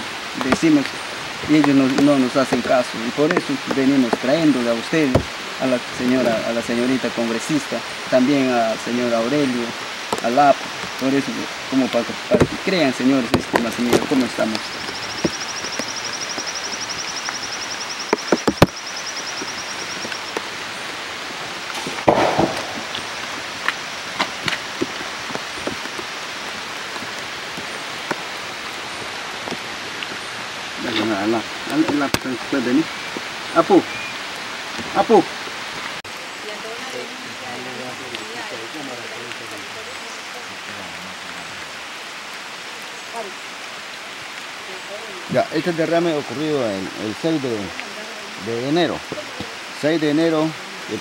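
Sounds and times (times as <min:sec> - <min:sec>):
rain falling on forest floor: 0:00.0 - 0:51.0
steady hiss: 0:00.0 - 0:51.0
rustling burst: 0:21.6 - 0:26.0
footsteps through mud and twigs: 0:21.6 - 0:33.3.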